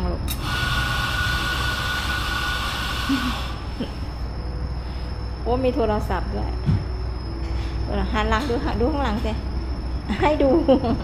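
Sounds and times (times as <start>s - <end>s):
mechanical hissing whir with whine: 0.0s - 11.0s.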